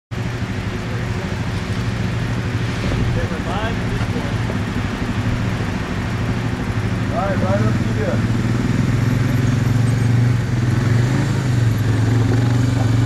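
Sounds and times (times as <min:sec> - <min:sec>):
atv engine idling: 0:00.2 - 0:10.8.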